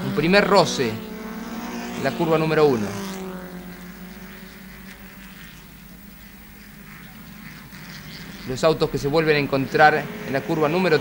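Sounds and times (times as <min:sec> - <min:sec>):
racing car engines buzzing: 0:00.0 - 0:11.0.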